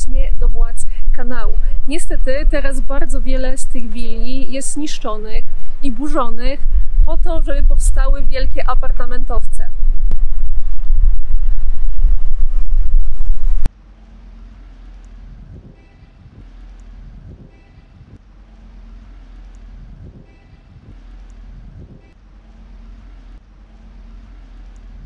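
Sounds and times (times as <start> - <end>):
quiet street ambience: 0.0 - 9.9, 13.7 - 25.0
wind buffeting microphone: 0.0 - 13.7.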